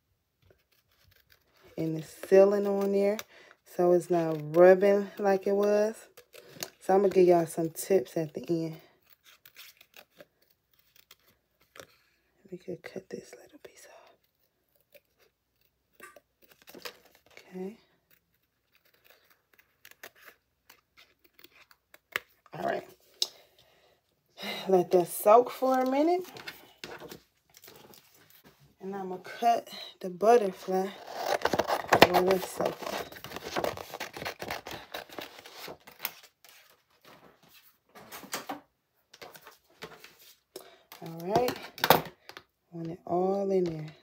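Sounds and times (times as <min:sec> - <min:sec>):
scissors snipping paper: 0:00.4 - 0:12.0, 0:14.2 - 0:22.4, 0:30.4 - 0:36.7
paper rustling and crinkling: 0:14.3 - 0:23.1, 0:25.2 - 0:28.8, 0:30.3 - 0:42.4
person speaking: 0:22.5 - 0:23.4, 0:24.4 - 0:26.6, 0:28.8 - 0:34.8, 0:40.9 - 0:41.8, 0:42.7 - 0:44.0.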